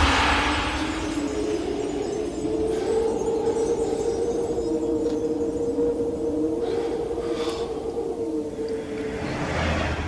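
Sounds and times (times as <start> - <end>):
faint low rumble: 0.0 - 2.8
low held drone tones: 0.0 - 10.0.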